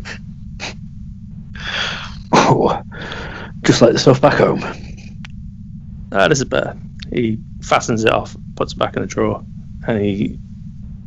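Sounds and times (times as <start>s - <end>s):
man gasping: 1.6s - 2.2s, 2.8s - 3.5s.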